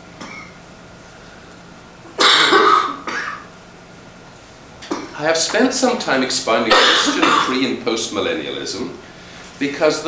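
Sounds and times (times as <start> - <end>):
man coughing: 2.2 - 3.5, 6.7 - 7.6.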